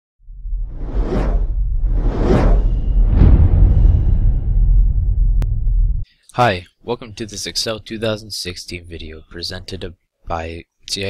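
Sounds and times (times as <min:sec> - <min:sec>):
deep continuous rumble: 0:00.3 - 0:06.0
whoosh sound effect: 0:00.6 - 0:05.1.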